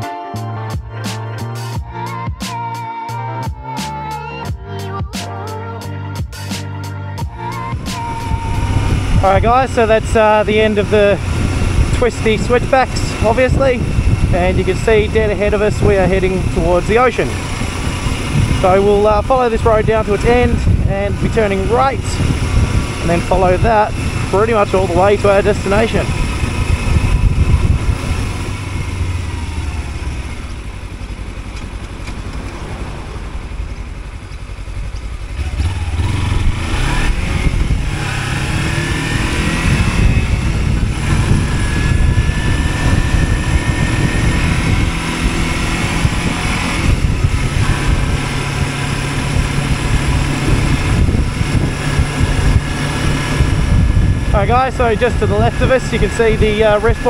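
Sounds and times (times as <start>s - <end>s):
motorcycle engine: 3.4s - 57.0s
wind rushing over microphone: 7.2s - 57.0s.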